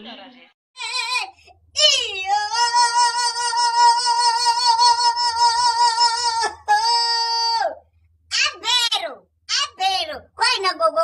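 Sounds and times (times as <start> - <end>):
high voice singing with vibrato: 0.8 - 7.8.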